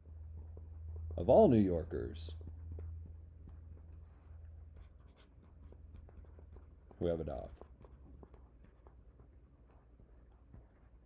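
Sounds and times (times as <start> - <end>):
low steady hum: 0.0 - 11.0
stylus scratching on tablet: 0.1 - 11.0.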